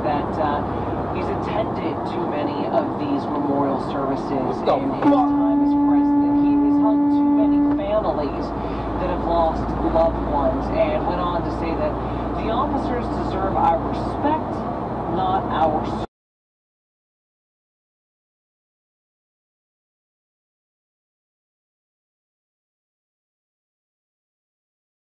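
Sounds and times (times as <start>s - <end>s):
truck cab rumble: 0.0s - 16.0s
vehicle horn steady tone: 5.0s - 8.2s.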